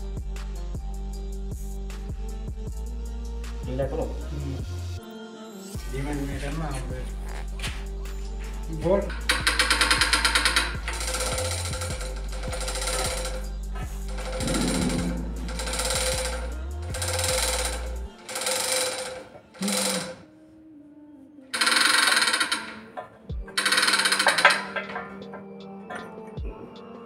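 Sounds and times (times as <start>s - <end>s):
metallic ratchet clatter: 9.0s - 20.2s, 21.6s - 22.9s, 23.5s - 26.0s.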